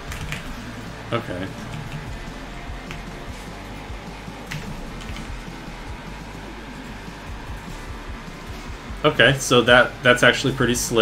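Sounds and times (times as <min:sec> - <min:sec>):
quiet background music: 0:00.0 - 0:11.0
keyboard or mouse clicks: 0:00.1 - 0:00.6, 0:01.6 - 0:02.2.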